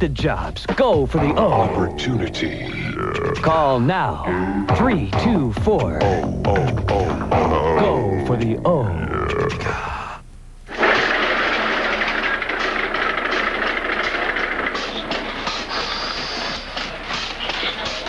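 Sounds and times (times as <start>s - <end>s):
stretcher rolling and rattling: 10.8s - 16.8s.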